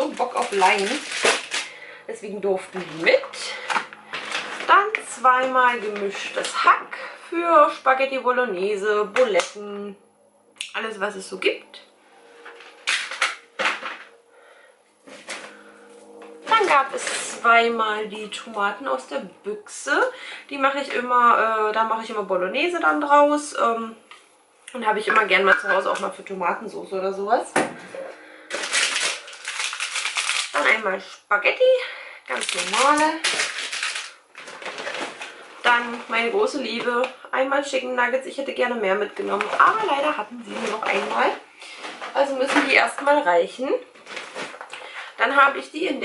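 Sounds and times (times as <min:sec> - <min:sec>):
woman speaking: 0:00.0 - 0:10.0, 0:10.6 - 0:11.9, 0:16.4 - 0:24.1, 0:24.7 - 0:27.9, 0:30.5 - 0:33.4, 0:35.6 - 0:41.5, 0:42.1 - 0:43.9, 0:45.0 - 0:46.0
packaging rustling and knocking: 0:00.1 - 0:01.7, 0:28.5 - 0:30.6, 0:32.4 - 0:35.4, 0:44.0 - 0:44.7.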